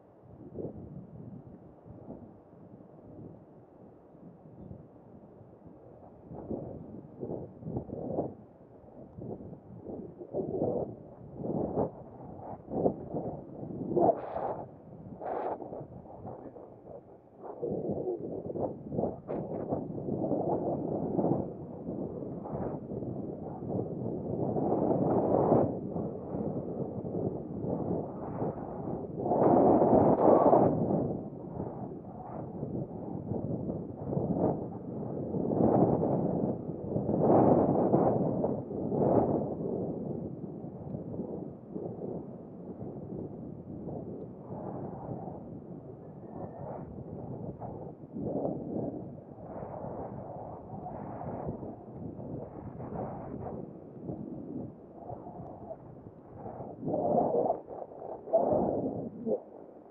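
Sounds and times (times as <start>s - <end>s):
wind buffeting microphone: 0.0s - 3.5s, 4.2s - 59.9s.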